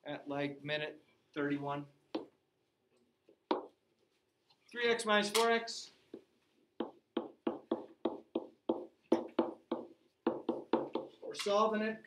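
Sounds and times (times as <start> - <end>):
stylus tapping and scraping on whiteboard: 2.1 - 2.4, 3.2 - 4.1, 6.0 - 11.5.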